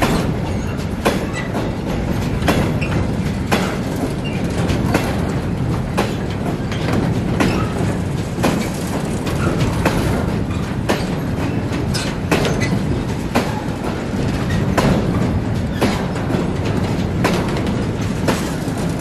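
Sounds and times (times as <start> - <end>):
steel wheels rumbling on rail: 0.0 - 19.0
wheels clacking over rail joints: 0.0 - 19.0.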